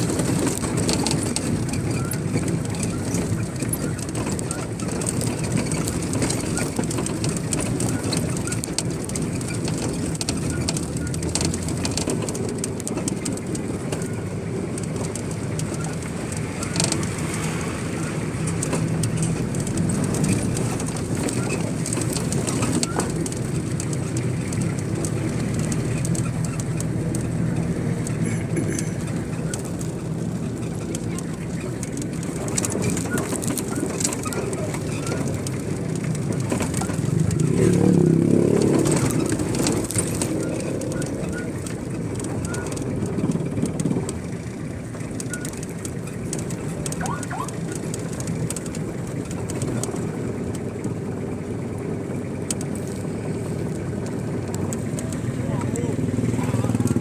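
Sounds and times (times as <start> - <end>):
vehicle engine and road rumble: 0.0 - 57.0
indistinct voices: 54.9 - 57.0.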